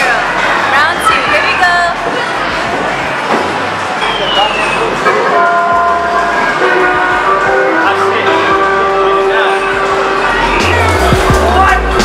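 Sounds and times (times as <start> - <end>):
din of chatter: 0.0 - 12.0
music with low bass: 9.7 - 12.0.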